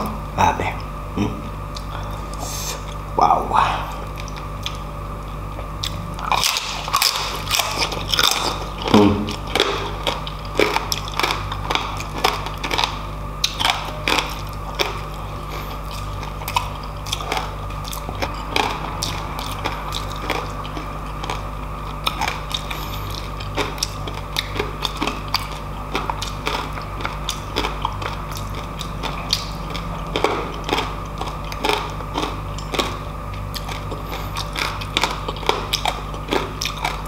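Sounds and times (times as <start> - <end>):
chewing food: 4.0 - 37.0
crunching crispy pork skin: 5.6 - 37.0.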